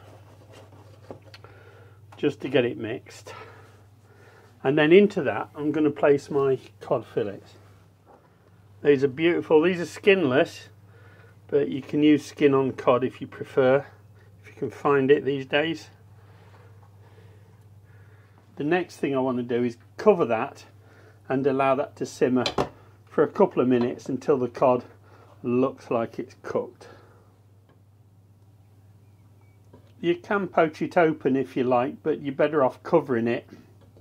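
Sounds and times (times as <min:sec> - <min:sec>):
steady low hum: 0:00.0 - 0:32.2.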